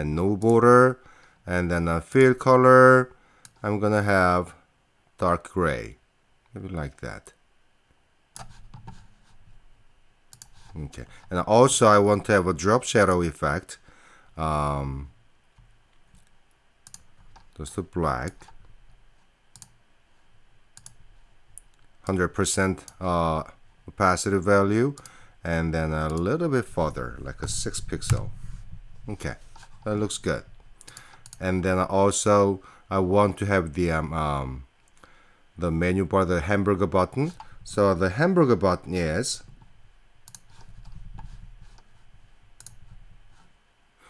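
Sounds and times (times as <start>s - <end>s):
computer mouse clicks: 10.3s - 10.6s, 16.2s - 17.5s, 19.5s - 19.8s, 20.8s - 21.0s, 30.8s - 31.4s, 40.2s - 41.9s, 42.6s - 42.9s
faint low rumble: 25.4s - 32.4s.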